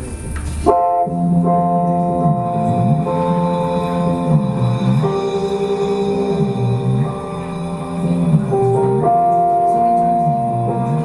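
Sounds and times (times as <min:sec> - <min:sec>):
held horn-like chord: 0:00.7 - 0:11.0
lower sustained note: 0:00.7 - 0:11.0
low drone: 0:01.0 - 0:11.0.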